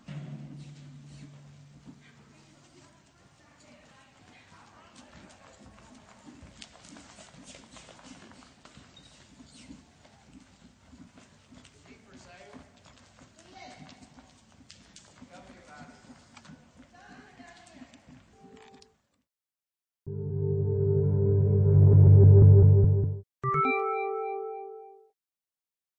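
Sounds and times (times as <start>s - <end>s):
horse hoofbeats on dirt: 0.0s - 18.5s.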